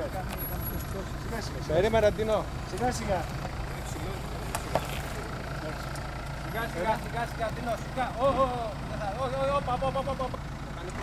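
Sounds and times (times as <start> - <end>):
car engine at low revs: 0.0 - 11.0.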